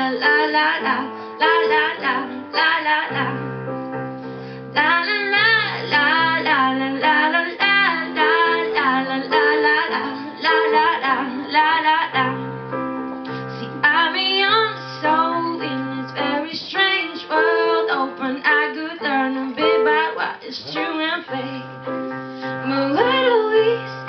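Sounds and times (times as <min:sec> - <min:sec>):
woman singing into a microphone: 0:00.0 - 0:03.6, 0:04.7 - 0:12.5, 0:13.3 - 0:24.0
keyboard chords: 0:00.0 - 0:24.0.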